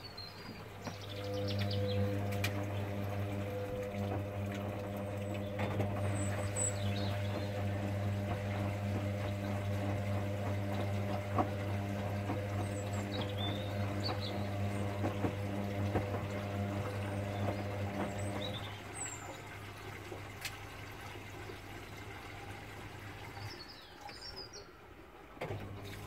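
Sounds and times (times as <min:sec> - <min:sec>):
washing machine motor hum: 0:00.0 - 0:26.0
water sloshing: 0:00.2 - 0:24.8.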